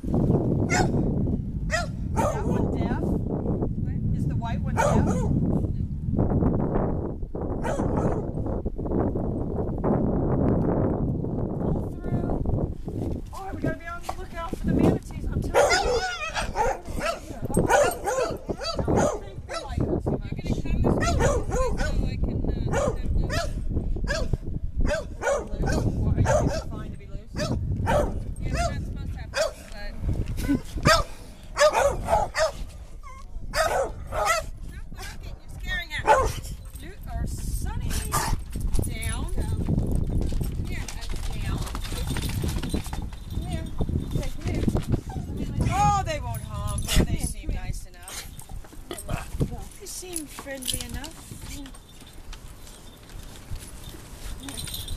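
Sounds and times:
dogs barking: 0.7 - 1.0, 1.7 - 2.8, 4.7 - 5.4, 7.6 - 8.3, 15.5 - 19.8, 21.0 - 22.1, 22.7 - 26.8, 27.4 - 29.6, 30.8 - 32.8, 33.5 - 35.2, 36.0 - 36.5, 38.0 - 38.4.

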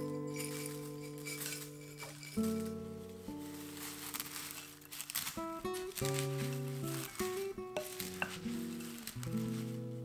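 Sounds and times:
soft background music: 0.0 - 10.0
spatula stirring dry oats: 0.0 - 10.0.

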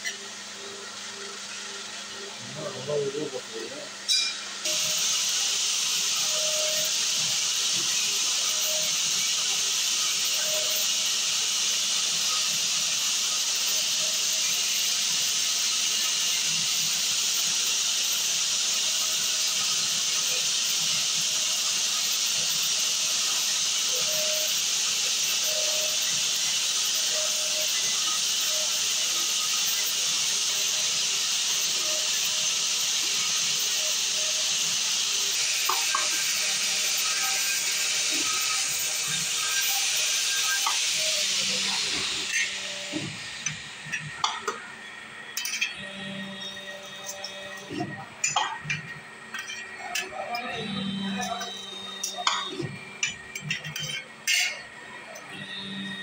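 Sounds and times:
hydraulic press hissing: 2.2 - 56.0.

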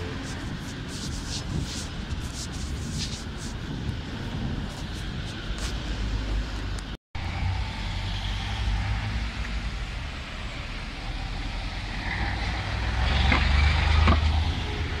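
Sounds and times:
road traffic driving past: 0.0 - 15.0.

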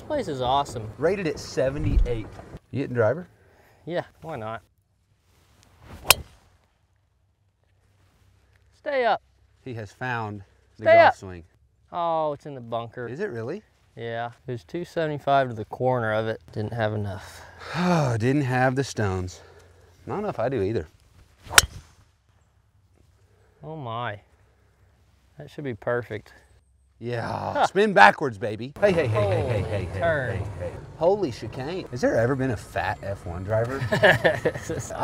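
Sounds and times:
golf club swing whoosh: 5.9 - 6.4, 21.4 - 21.9
golf club striking ball: 6.0 - 6.3, 21.5 - 21.8.

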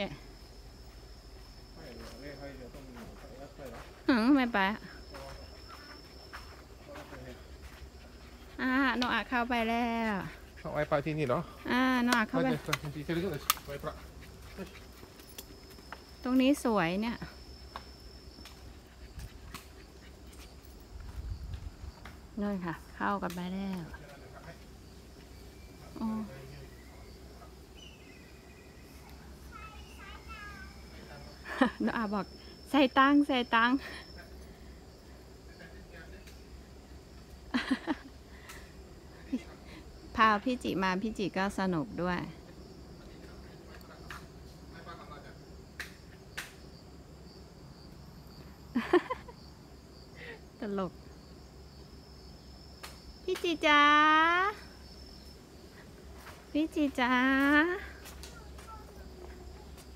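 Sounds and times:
high-pitched insect drone: 0.0 - 59.9
footsteps on stone path: 0.8 - 4.4, 5.0 - 10.6, 12.0 - 16.2, 17.6 - 22.2.

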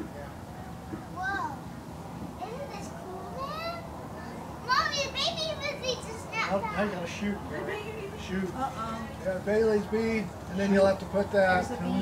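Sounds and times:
children squealing and shouting: 2.4 - 7.0.

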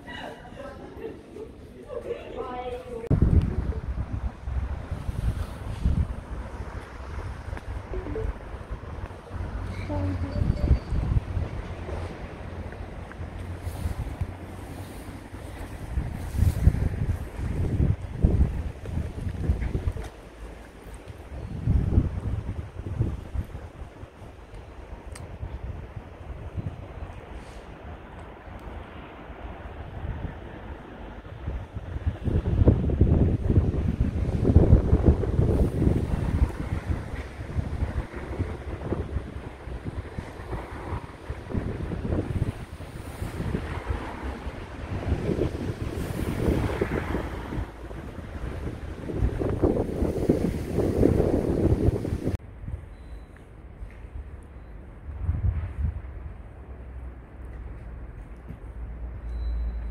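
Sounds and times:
wind buffeting microphone: 2.4 - 53.0, 55.0 - 59.2.

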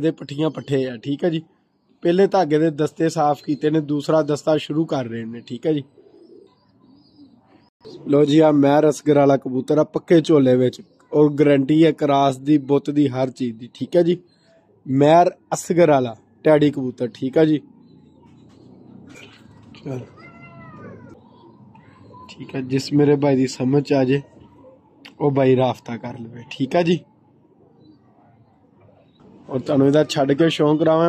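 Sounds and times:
faint background noise: 0.0 - 31.0
pigeons cooing: 3.3 - 8.6, 13.5 - 31.0.

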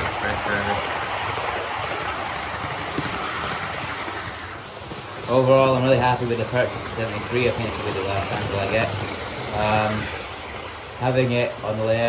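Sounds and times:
model train running: 0.0 - 12.0.

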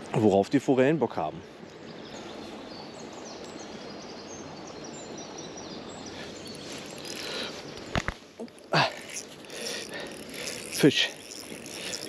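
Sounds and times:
outdoor background noise: 0.0 - 12.0
small birds chirping: 0.2 - 12.0.

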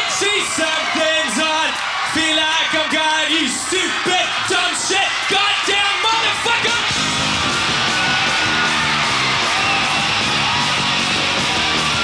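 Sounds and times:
punk rock band playing: 6.1 - 12.0.

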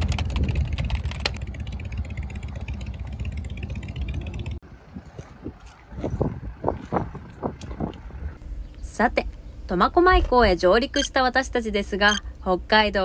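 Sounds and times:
traffic engines rumbling: 0.0 - 10.3
open-air background sound: 0.0 - 13.0.

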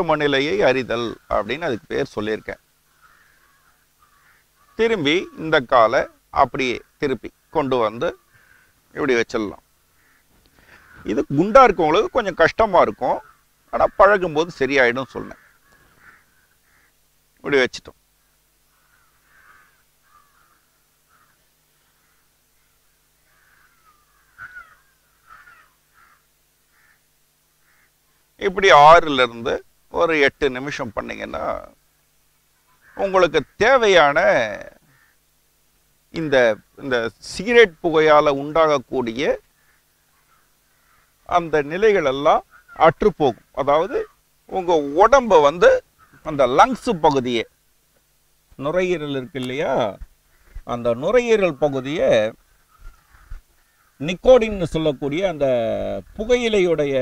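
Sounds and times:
man speaking: 0.0 - 2.6, 4.8 - 8.2, 9.0 - 9.6, 11.0 - 13.2, 13.8 - 15.4, 17.4 - 18.0, 28.4 - 31.8, 33.0 - 34.8, 36.2 - 39.4, 41.3 - 47.5, 48.6 - 50.0, 50.7 - 52.4, 54.0 - 57.0
bird calling: 0.0 - 29.4, 30.5 - 47.5, 48.1 - 57.0.

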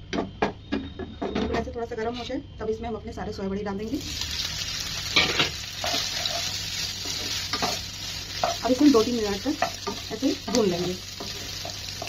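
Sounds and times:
food sizzling in oil: 3.8 - 12.0
spatula stirring and scraping: 5.0 - 12.0.

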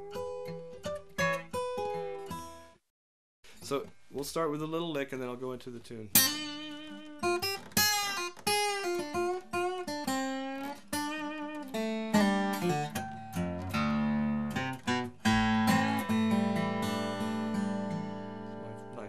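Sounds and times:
fingerstyle acoustic guitar: 0.0 - 2.8, 6.1 - 19.0.

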